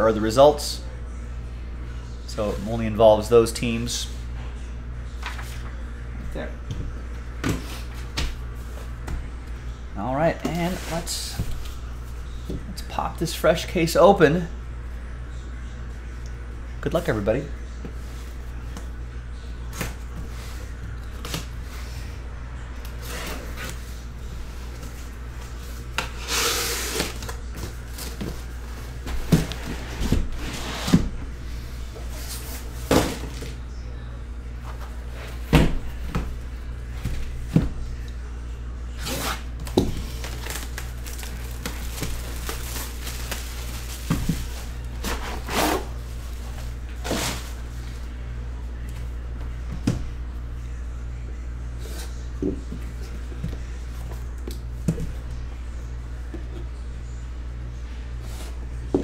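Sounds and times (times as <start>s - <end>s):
steady low hum: 0.0s - 59.0s
cardboard scraping rustles: 26.1s - 31.2s, 40.1s - 47.8s
boxes knocking and thunking: 27.1s - 31.2s, 32.1s - 33.6s, 39.6s - 47.6s.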